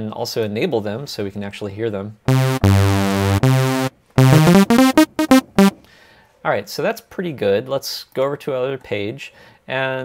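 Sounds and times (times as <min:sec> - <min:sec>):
thick sawtooth synth notes: 0:02.3 - 0:05.8.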